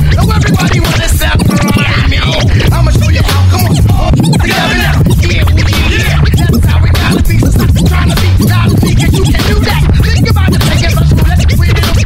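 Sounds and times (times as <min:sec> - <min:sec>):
heavy bass beat: 0:00.0 - 0:12.0
turntable record scratches: 0:00.0 - 0:12.0.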